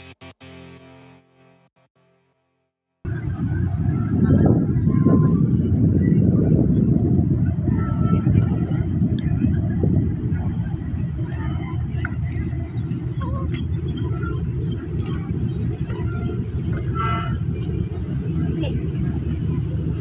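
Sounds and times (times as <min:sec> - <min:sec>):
faint distant voices: 0:03.1 - 0:20.0
low rumble: 0:03.1 - 0:20.0.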